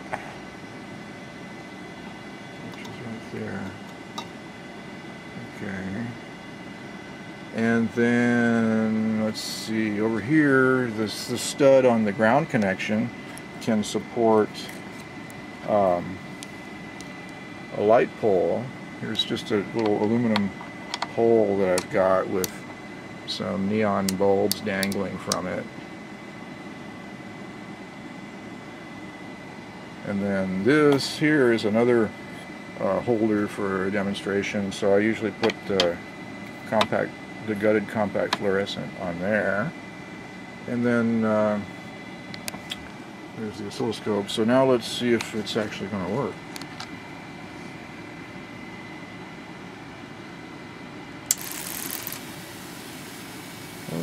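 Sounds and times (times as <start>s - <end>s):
small cooling fan whirring: 0.0s - 54.0s
hiss: 51.4s - 54.0s.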